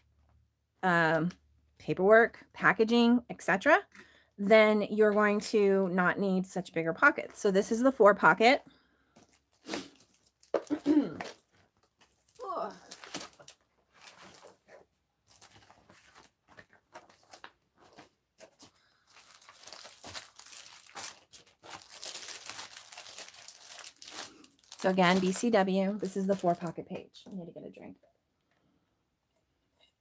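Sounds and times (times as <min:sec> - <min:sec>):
plastic sheets crinkling: 0:09.2 - 0:27.0.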